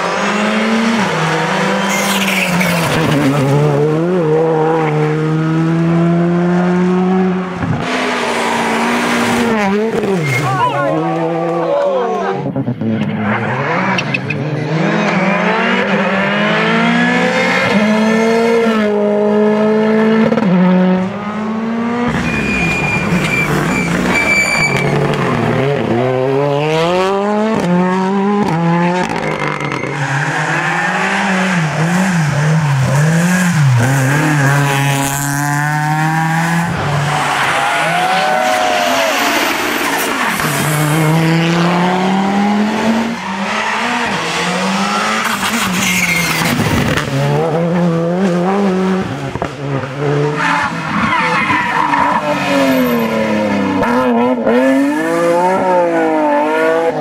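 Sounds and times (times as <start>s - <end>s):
rally car engines revving: 0.0s - 57.0s.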